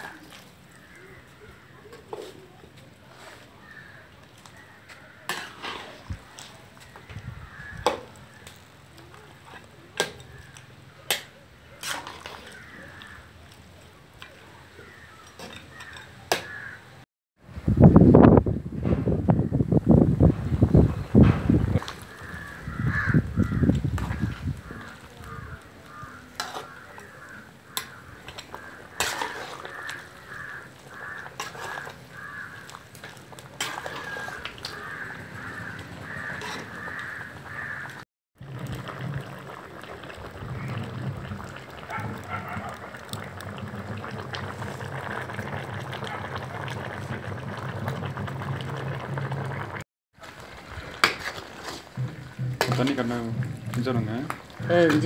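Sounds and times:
metal spatula stirring in a pot: 0.0s - 13.3s, 23.9s - 37.9s, 51.0s - 55.0s
crow cawing: 0.7s - 2.0s, 3.6s - 5.3s, 7.2s - 8.5s, 12.4s - 13.3s, 14.8s - 17.0s, 22.1s - 32.8s, 33.7s - 38.0s
metal ladle scraping wok: 3.0s - 10.6s, 11.8s - 13.2s, 14.8s - 16.8s, 23.9s - 38.0s, 50.5s - 55.0s.

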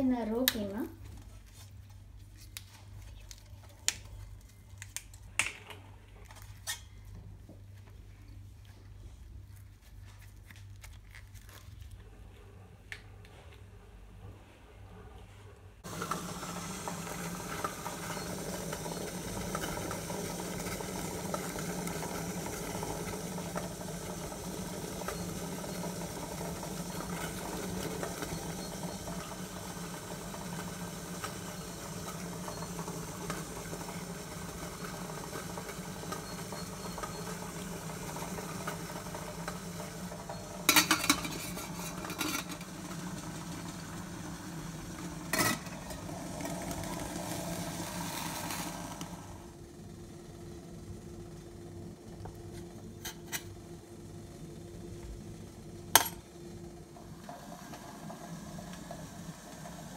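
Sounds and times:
steamer pot rumbling and hissing: 13.8s - 59.9s.

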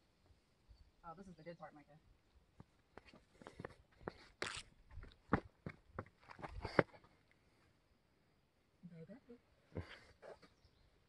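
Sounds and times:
footsteps scuffing on rock: 2.6s - 7.1s.

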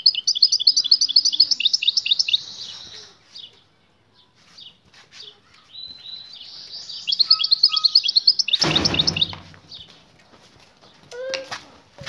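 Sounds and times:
goldfinch twittering song: 0.0s - 3.6s, 5.7s - 10.0s.

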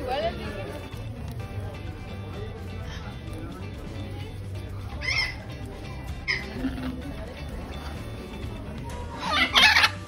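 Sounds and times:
background music: 0.0s - 10.0s
macaw calls: 4.9s - 5.6s, 9.2s - 10.0s.

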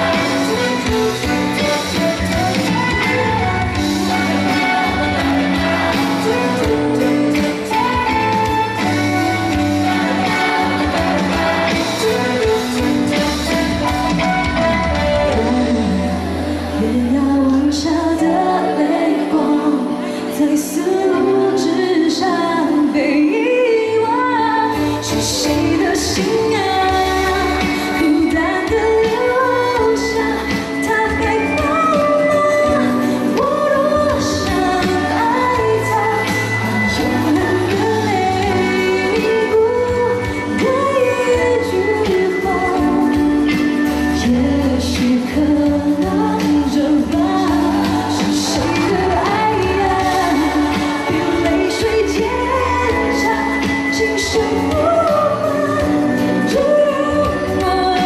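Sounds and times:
bass line: 0.0s - 18.2s, 44.0s - 56.7s
instrumental accompaniment: 0.0s - 22.9s
woman singing pop song: 0.0s - 58.0s.

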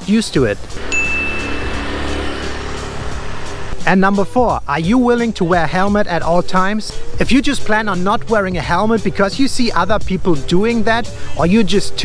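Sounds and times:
motor scooter riding past: 0.6s - 3.8s
brief high-pitched tone: 0.8s - 2.4s.

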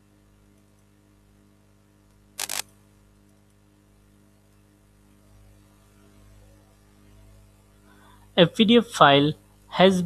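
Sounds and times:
low mains hum: 0.0s - 10.0s
computer mouse clicks: 2.4s - 2.6s.

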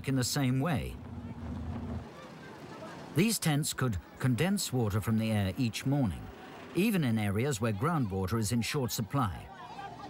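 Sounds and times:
vehicle rumble: 0.0s - 3.2s.

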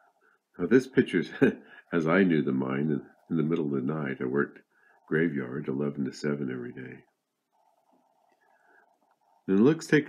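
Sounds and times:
person speaking: 0.5s - 7.9s, 8.5s - 10.0s.

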